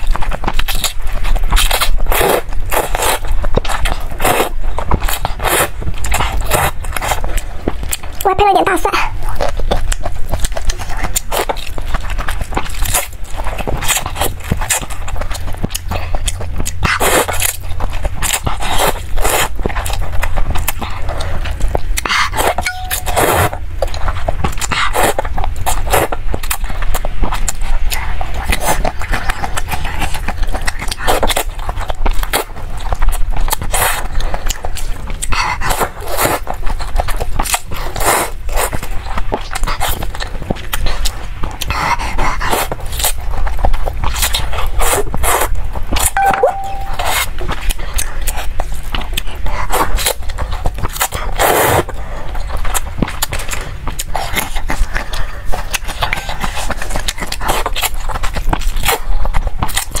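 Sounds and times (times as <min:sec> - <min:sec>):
slurping and chewing noodles: 0:00.0 - 1:00.0.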